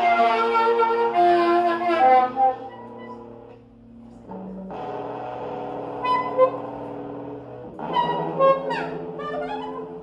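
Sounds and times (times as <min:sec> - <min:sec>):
electric guitar chord ringing: 0:02.6 - 0:10.0
short higher guitar notes: 0:04.2 - 0:10.0.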